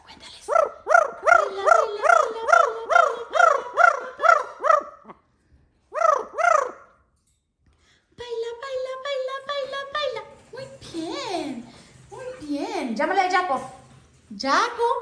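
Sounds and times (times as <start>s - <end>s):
parrot calling: 0.5s - 7.1s.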